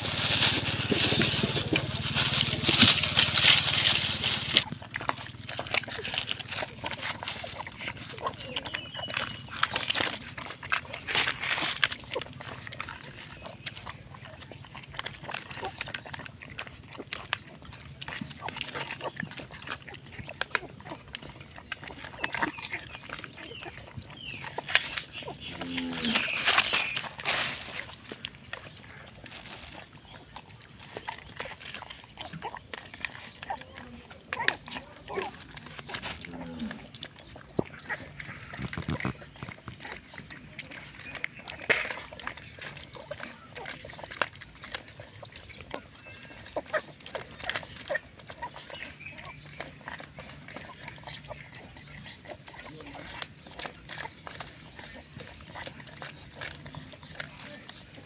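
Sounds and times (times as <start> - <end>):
rustling: 0.0 - 13.4, 21.7 - 33.6
puppies chewing and lapping: 0.0 - 58.0
puppy whimpering: 0.1 - 11.0, 29.6 - 58.0.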